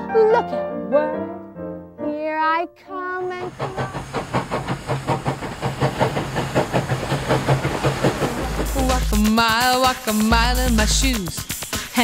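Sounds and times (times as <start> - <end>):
steam train chuffing: 3.2 - 12.0
steam hiss: 3.4 - 12.0
deep rumble: 3.5 - 9.4.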